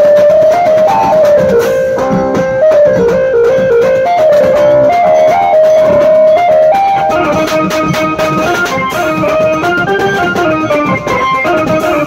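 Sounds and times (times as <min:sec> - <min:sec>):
banjo melody: 0:00.0 - 0:12.0
drums beat: 0:00.0 - 0:12.0.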